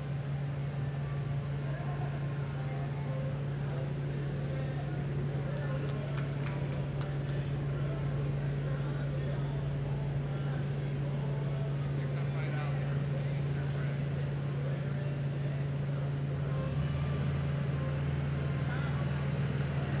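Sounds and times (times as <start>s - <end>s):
faint indistinct voices: 0.0s - 20.0s
steady low hum: 0.0s - 20.0s.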